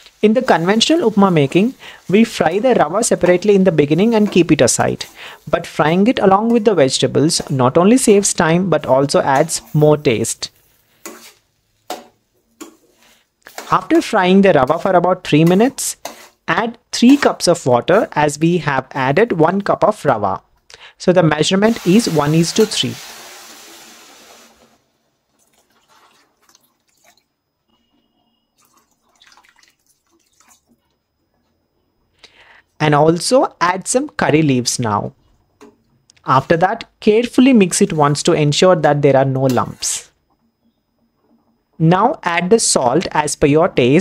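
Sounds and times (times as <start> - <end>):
metal spatula scraping a pan: 0.3 - 8.1, 8.8 - 12.0, 12.6 - 14.1, 14.7 - 16.4, 17.0 - 18.2
water pouring into metal pan: 21.8 - 24.6, 25.4 - 27.2, 28.6 - 30.7
faint water drips: 25.4 - 27.3, 28.6 - 31.0.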